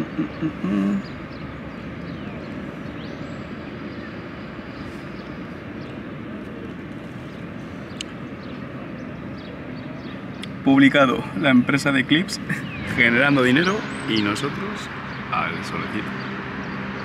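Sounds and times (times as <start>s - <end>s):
outdoor background hum: 0.0s - 17.0s.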